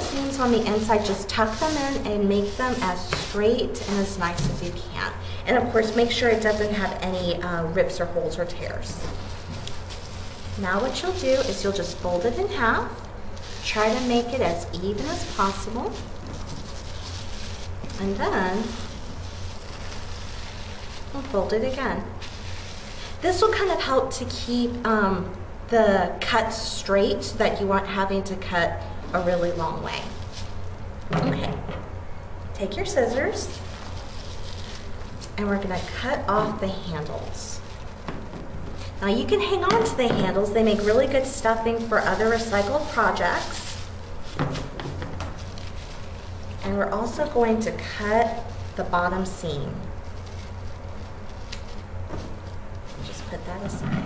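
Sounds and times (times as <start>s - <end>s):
background hiss with low hum: 0.0s - 54.0s.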